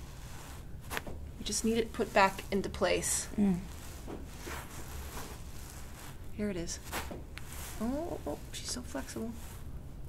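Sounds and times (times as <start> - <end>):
hands rustling on hair: 0.0 - 9.7
low steady hum: 0.0 - 10.0.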